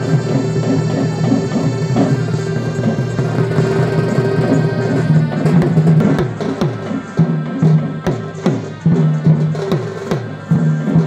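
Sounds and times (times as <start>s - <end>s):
barrel drums heavy strokes: 0.0s - 8.7s.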